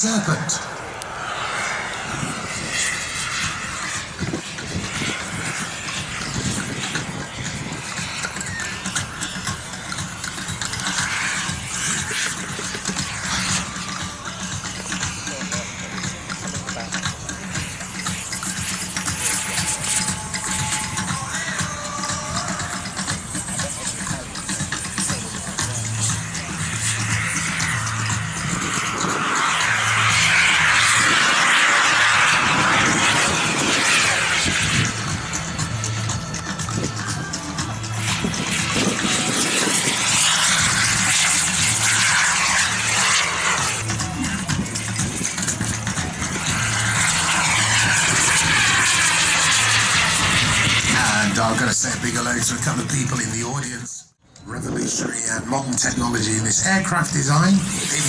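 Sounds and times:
model jet flying past: 0.0s - 53.8s, 54.5s - 58.0s
background music with steady beat: 1.4s - 51.5s.

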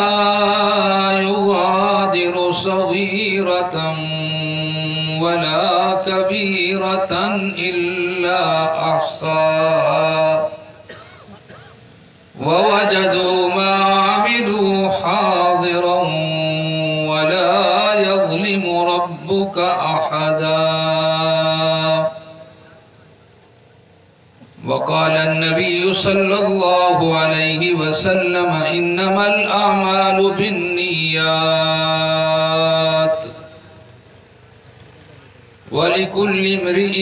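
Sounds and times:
man chanting through microphone: 0.0s - 11.0s, 12.3s - 23.0s, 24.5s - 33.9s, 35.6s - 37.0s.

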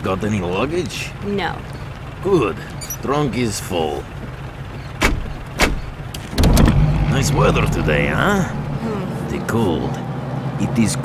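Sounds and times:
faint low rumble: 0.0s - 10.1s.

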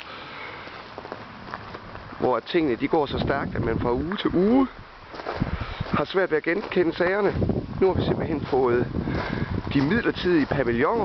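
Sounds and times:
footsteps crunching on gravel: 0.7s - 2.3s, 3.3s - 11.0s.

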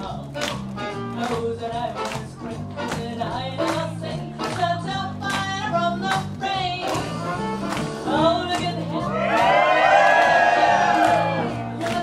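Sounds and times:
swing jazz dance music: 0.0s - 12.0s
audience cheering and whooping: 9.0s - 11.9s.

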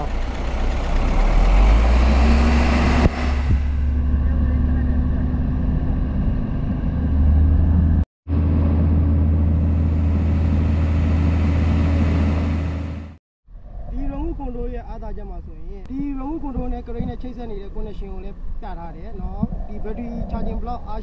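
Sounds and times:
diesel engine droning under load: 0.0s - 13.2s.

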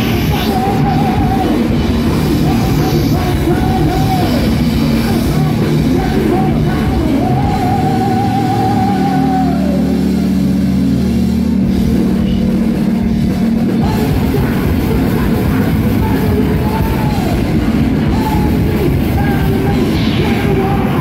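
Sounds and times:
shouted vocals: 0.0s - 10.4s, 13.8s - 21.0s
distorted electric guitars: 0.0s - 21.0s
drum kit: 0.0s - 21.0s.

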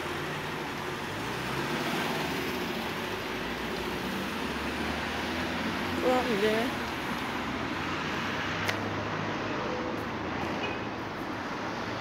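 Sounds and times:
cars on city street: 0.0s - 12.0s.

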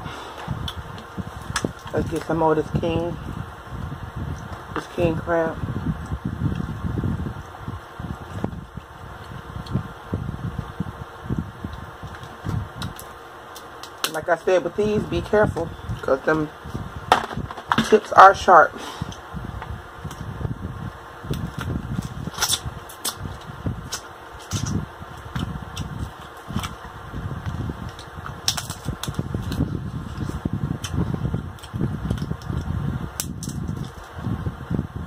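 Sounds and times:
crab shell cracking: 11.7s - 14.3s, 21.3s - 27.0s, 27.8s - 34.2s.

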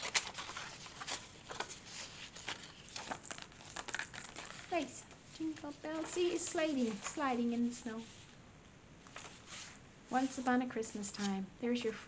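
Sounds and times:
paper rustling and scraping: 0.0s - 8.4s, 9.0s - 11.4s.

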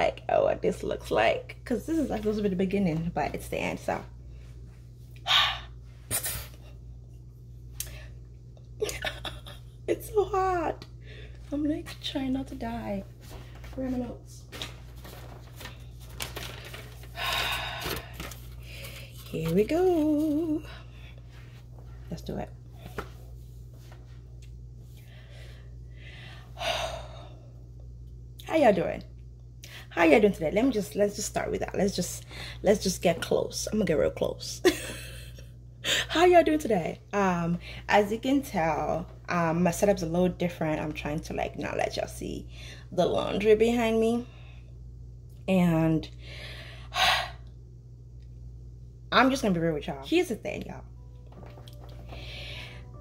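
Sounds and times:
ceiling fan humming: 0.0s - 53.0s.

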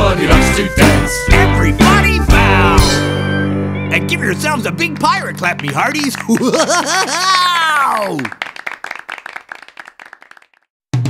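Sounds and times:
drum-led music: 0.0s - 3.2s
people clapping: 4.8s - 10.7s.

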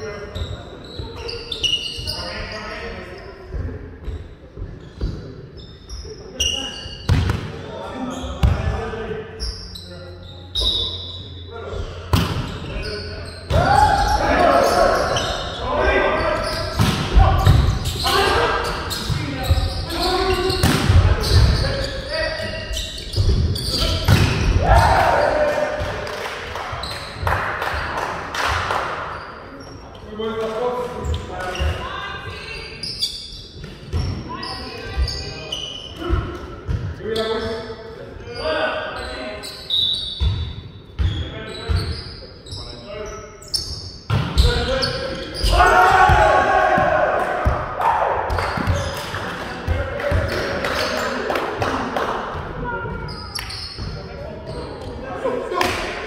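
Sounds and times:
volleyball players shouting: 13.5s - 21.6s, 23.7s - 26.2s, 45.4s - 49.0s.

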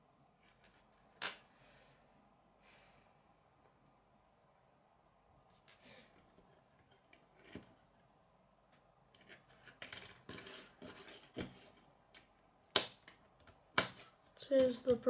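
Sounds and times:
plastic pieces snapping together: 12.1s - 14.1s.

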